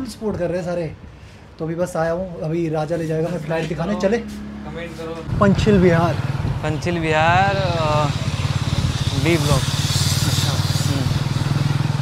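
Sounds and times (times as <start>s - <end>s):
wind buffeting microphone: 5.2s - 9.7s
motorbike engine running: 5.3s - 12.0s.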